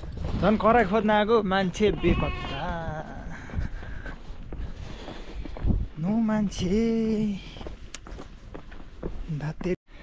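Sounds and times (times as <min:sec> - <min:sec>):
livestock bleating: 0:01.8 - 0:03.1.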